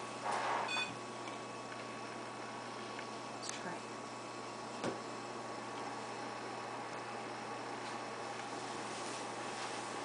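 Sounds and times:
faint electrical hum: 0.0s - 10.0s
soft rustle: 8.6s - 10.0s.

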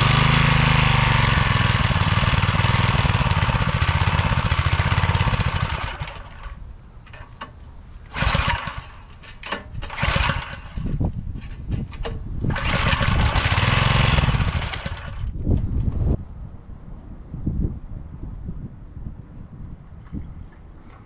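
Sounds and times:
small engine running and stuttering: 0.0s - 6.6s, 8.1s - 9.0s, 9.8s - 11.0s, 12.5s - 15.4s
recoil starter pulls: 0.0s - 16.0s.

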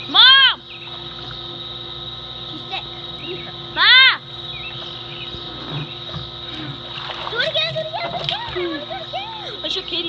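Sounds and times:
girl shouting: 0.1s - 0.6s, 3.8s - 4.2s
water splashing and running off: 6.5s - 9.2s
girls' voices: 7.3s - 10.0s.

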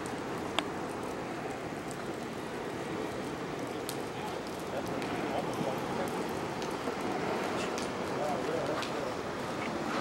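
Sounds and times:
ocean surf against pier: 0.0s - 10.0s.

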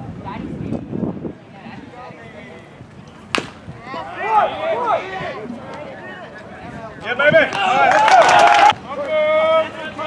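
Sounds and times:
bat cracking against baseball: 3.3s - 3.7s.

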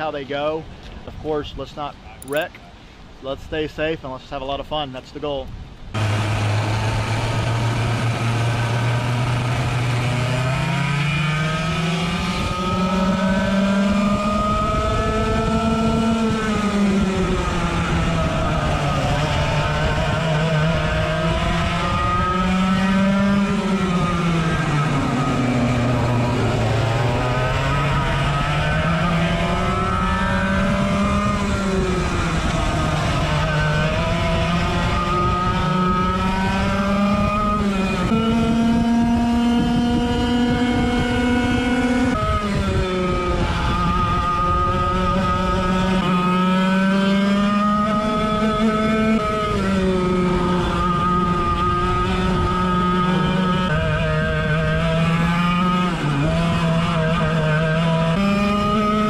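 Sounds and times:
kart engine revving: 5.9s - 59.0s.

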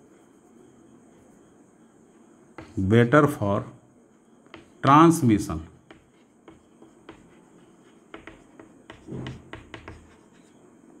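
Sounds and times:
chalk tapping and scratching: 2.6s - 2.9s, 4.4s - 4.9s, 5.8s - 10.7s.

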